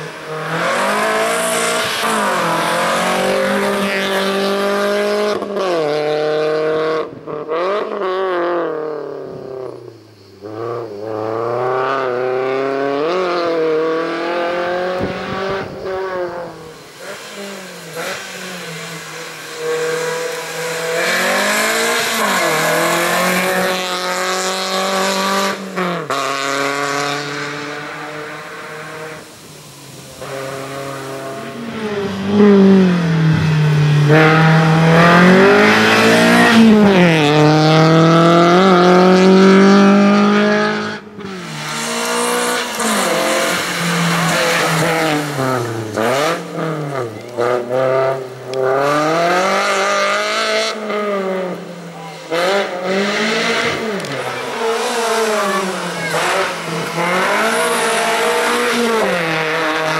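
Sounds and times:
race car engine revving: 0.0 - 9.4, 10.4 - 59.9.

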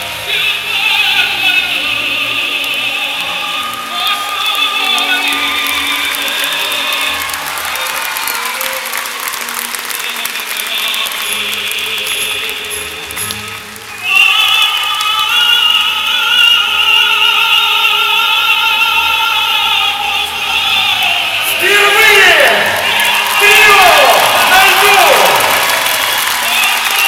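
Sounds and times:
operatic singing with accompaniment: 0.0 - 27.0.

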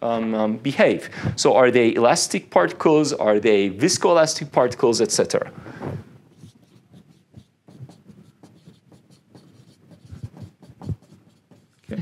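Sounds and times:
marker writing on whiteboard: 5.6 - 12.0.

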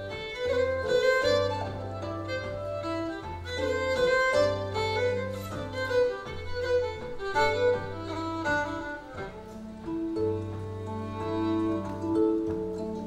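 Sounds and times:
fiddle bowed melody: 0.0 - 13.0
harp plucking bass line: 0.0 - 13.0.

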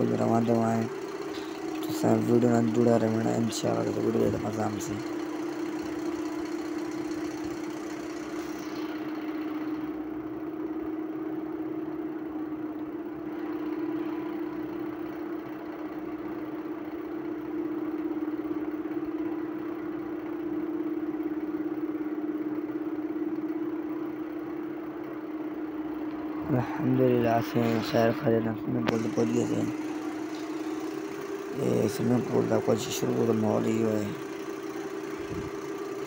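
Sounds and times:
motorcycle engine running: 0.0 - 36.0
road and wind noise: 35.2 - 35.6.

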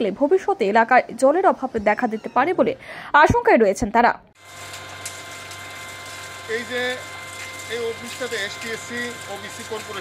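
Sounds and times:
electric water pump humming: 4.4 - 10.0.

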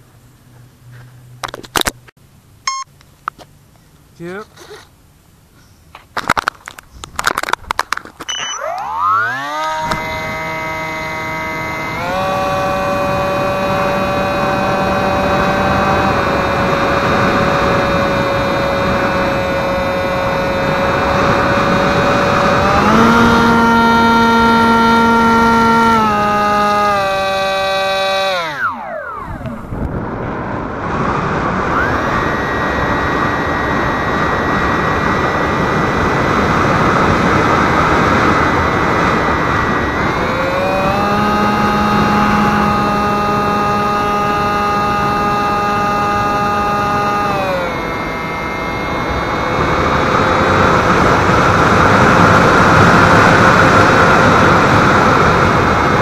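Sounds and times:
electric motor whine: 8.3 - 56.0
wind rush on microphone: 9.7 - 56.0.

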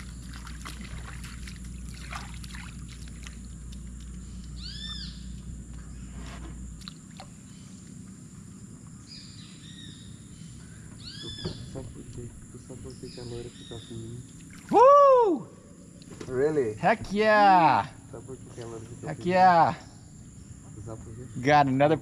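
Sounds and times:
faint outdoor background: 0.0 - 22.0
low steady hum: 0.0 - 22.0.

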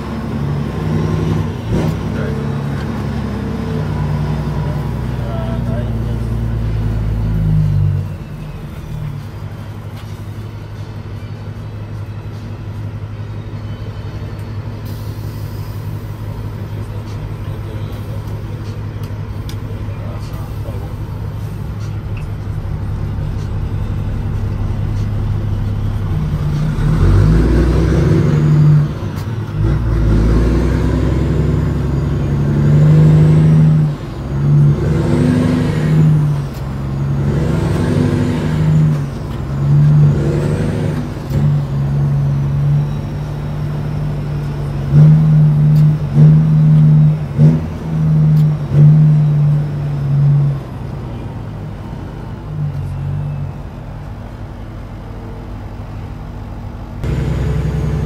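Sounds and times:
diesel truck engine revving: 0.0 - 58.0.

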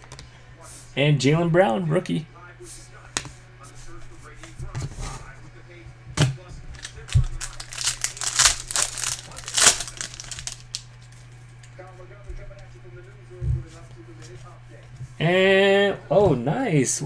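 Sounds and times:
foil wrapper tearing and crinkling: 6.8 - 10.9.

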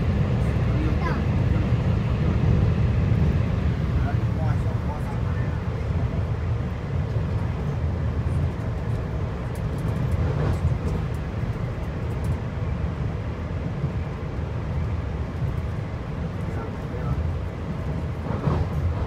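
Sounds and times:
train rumbling inside passenger car: 0.0 - 19.0.

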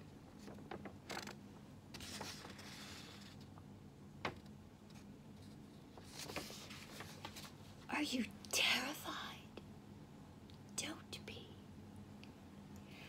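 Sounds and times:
woman whispering: 7.9 - 9.6, 10.8 - 11.7.

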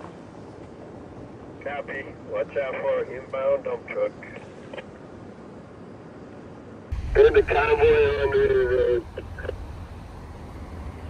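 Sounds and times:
radio channel hiss and hum: 0.0 - 5.4, 6.8 - 11.0
person speaking over radio: 1.6 - 4.5, 7.2 - 9.6.

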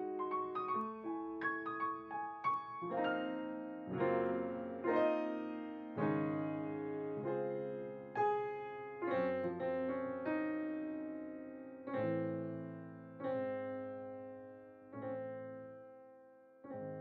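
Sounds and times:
slow piano chords: 0.0 - 17.0.

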